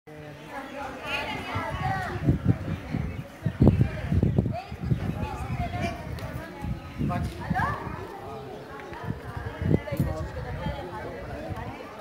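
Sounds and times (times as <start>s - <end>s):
people and children talking: 0.1s - 12.0s.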